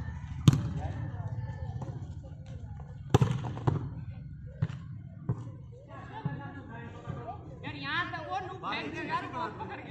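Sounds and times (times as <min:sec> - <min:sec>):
players' voices: 0:00.0 - 0:09.9.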